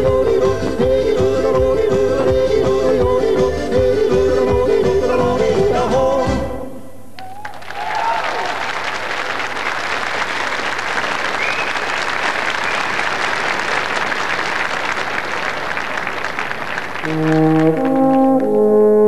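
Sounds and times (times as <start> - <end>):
folk band with accordions: 0.0 - 6.7
audience applauding: 7.2 - 18.6.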